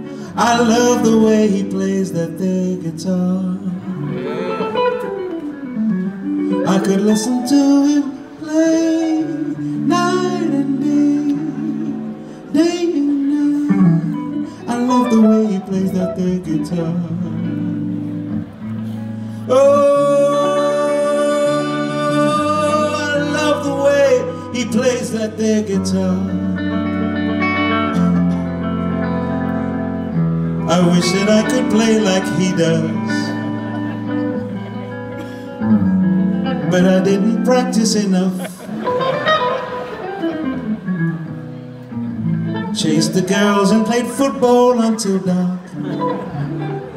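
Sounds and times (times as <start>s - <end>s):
electric guitars sustained chord: 0.0s - 37.7s.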